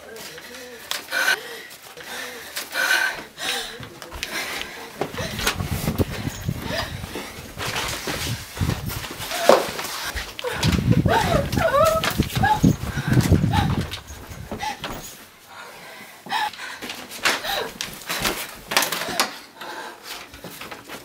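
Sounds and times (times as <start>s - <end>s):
hurried footsteps: 0.0s - 15.5s, 16.2s - 21.0s
handling noise: 3.8s - 15.4s.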